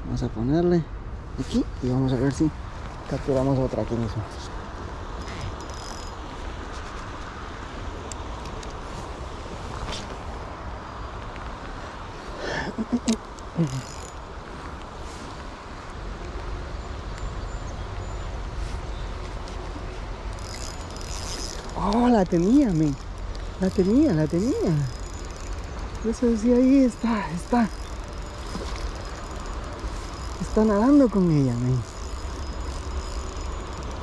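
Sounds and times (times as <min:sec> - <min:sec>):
river flowing: 0:07.3 - 0:34.0.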